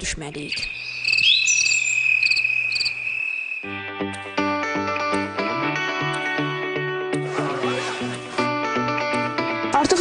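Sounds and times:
crickets chirping: 0:00.5 - 0:03.8
music: 0:03.6 - 0:10.0.

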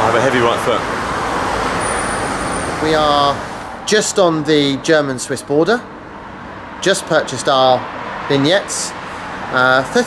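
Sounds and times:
road traffic rushing past: 0:00.0 - 0:10.0.

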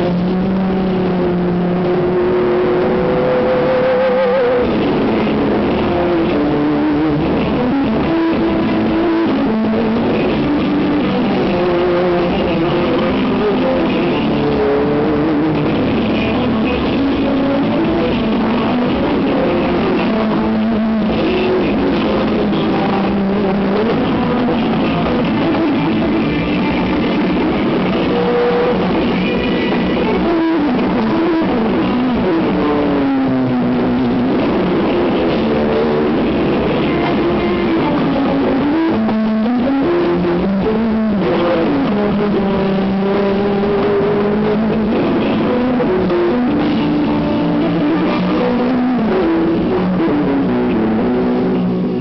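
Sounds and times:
electric guitar sustained notes: 0:00.0 - 0:52.0
live band music: 0:00.0 - 0:52.0.

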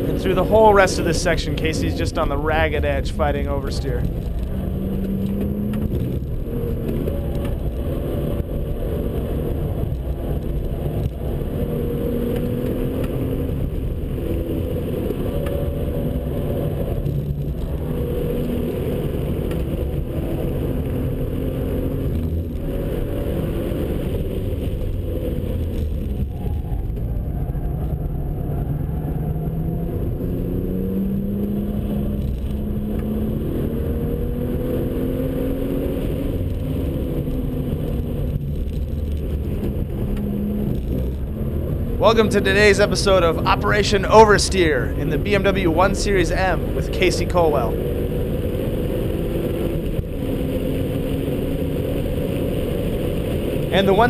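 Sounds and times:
car engine under load: 0:00.0 - 0:26.2.

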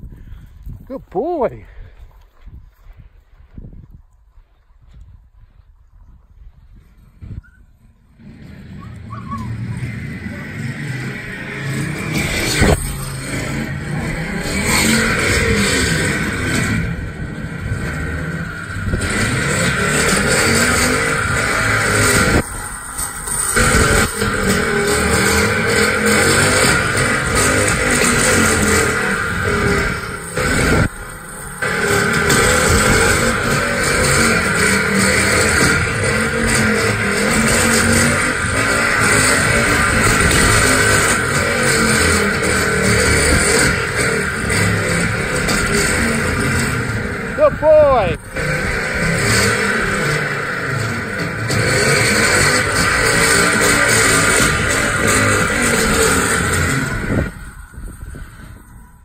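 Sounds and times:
machine motor running: 0:09.5 - 0:58.9.

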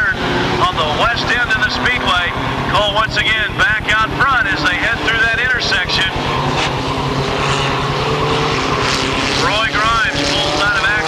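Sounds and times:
race car engines at speed: 0:00.0 - 0:11.0.

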